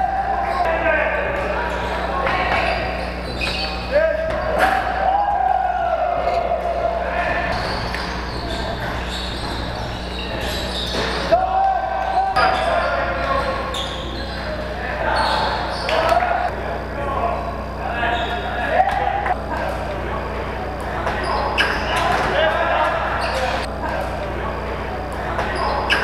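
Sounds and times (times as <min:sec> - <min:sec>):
players shouting: 0:00.0 - 0:26.0.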